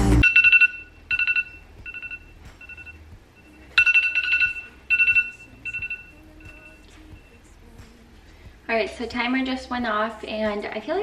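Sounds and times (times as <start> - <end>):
background music: 0.0 - 11.0
phone timer alarm beeping: 0.2 - 7.4.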